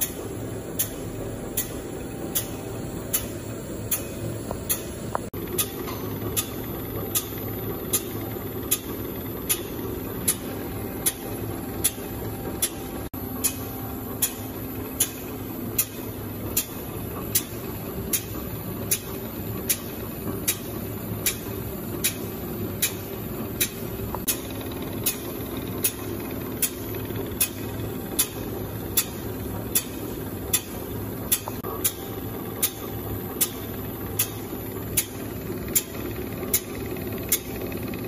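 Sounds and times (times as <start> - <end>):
machine humming: 0.0 - 38.0
sharp high click: 0.8 - 8.9, 13.4 - 14.4.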